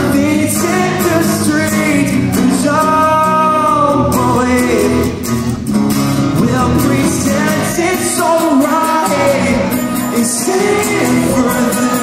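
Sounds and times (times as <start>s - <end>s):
person singing: 0.0s - 5.2s, 6.3s - 12.0s
strummed acoustic guitars: 0.0s - 12.0s.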